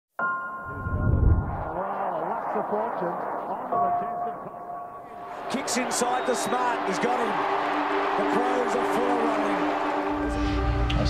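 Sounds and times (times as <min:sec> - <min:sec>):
man speaking indistinctly: 0:02.2 - 0:07.4.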